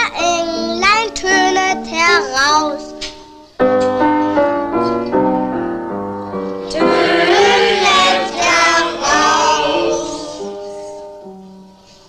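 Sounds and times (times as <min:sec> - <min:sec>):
piano chords: 0:03.7 - 0:11.8.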